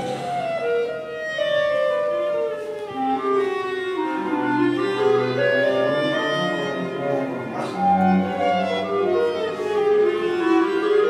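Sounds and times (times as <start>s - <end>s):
cello: 0.0s - 11.0s
clarinet: 0.0s - 11.0s
violin: 0.0s - 11.0s.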